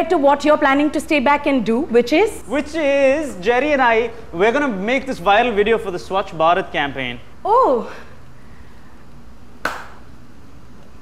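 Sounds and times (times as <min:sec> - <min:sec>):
hand clap: 0:09.6 - 0:10.1.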